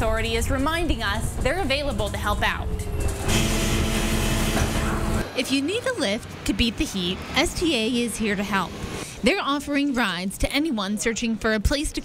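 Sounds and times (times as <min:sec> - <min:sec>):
bus engine humming: 0:00.0 - 0:10.0.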